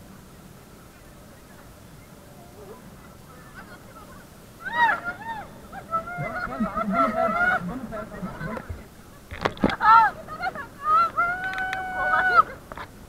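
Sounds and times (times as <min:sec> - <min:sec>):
people shrieking and laughing: 0:02.8 - 0:12.9.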